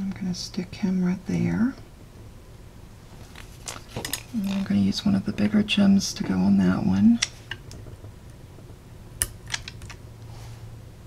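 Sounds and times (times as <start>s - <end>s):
faint crisp clicks and rustles: 3.0s - 10.6s.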